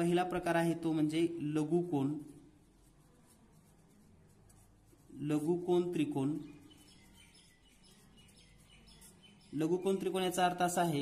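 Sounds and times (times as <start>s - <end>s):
pen scratching on paper: 2.5s - 5.9s, 6.7s - 10.3s.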